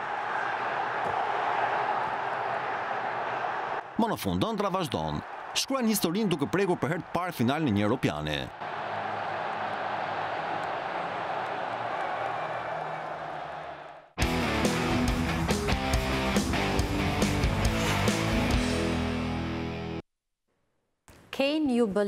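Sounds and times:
stadium crowd cheering: 0:00.0 - 0:19.0
rhythmic theme music: 0:14.2 - 0:19.9.

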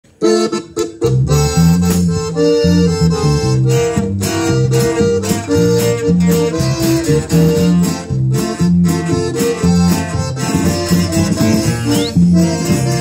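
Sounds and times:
live band with accordion: 0:00.0 - 0:13.0.

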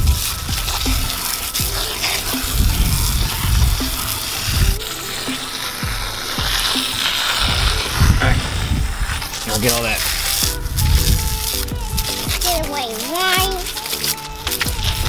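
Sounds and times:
hose nozzle spraying water: 0:00.0 - 0:15.0.

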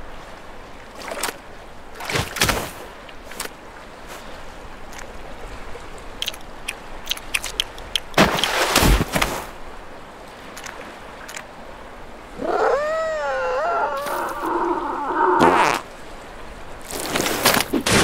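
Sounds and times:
sea: 0:00.0 - 0:18.0
seal character whining: 0:12.4 - 0:15.7.

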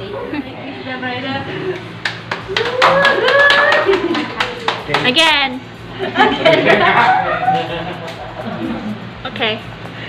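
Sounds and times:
people clapping: 0:01.8 - 0:05.4.

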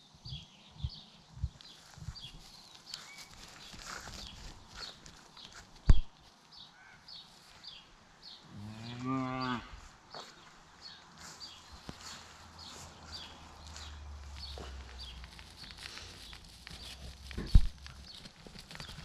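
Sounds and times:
cow mooing: 0:08.5 - 0:09.7.

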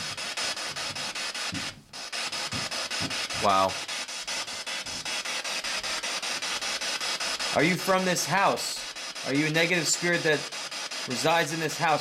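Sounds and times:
choppy radio static hiss: 0:00.8 - 0:12.0.

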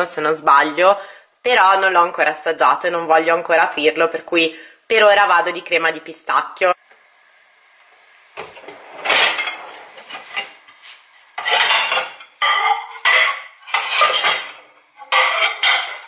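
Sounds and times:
ceramic plates clinking: 0:11.4 - 0:16.0.

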